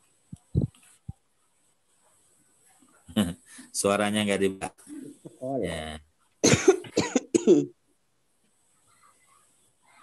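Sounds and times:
person coughing: 6.4 - 7.7.

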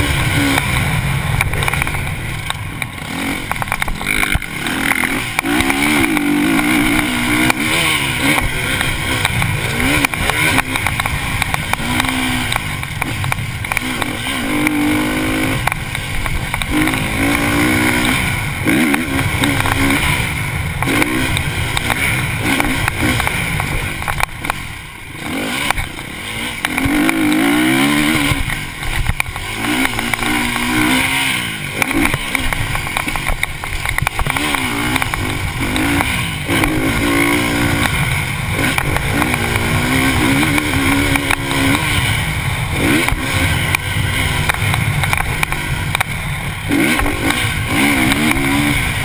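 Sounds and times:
motocross bike engine revving: 0.0 - 49.0.

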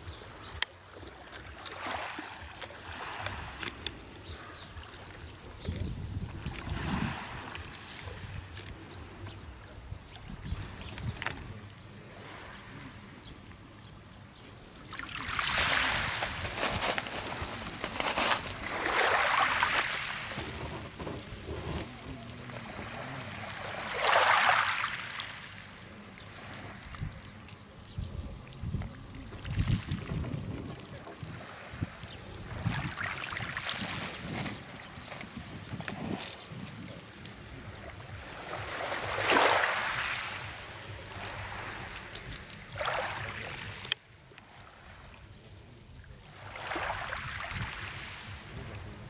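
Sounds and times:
wind rumble on microphone: 5.3 - 11.6, 26.9 - 38.7, 47.2 - 49.0
waves washing over pebbles: 6.3 - 8.4, 14.8 - 27.6, 29.3 - 45.1, 46.2 - 49.0.

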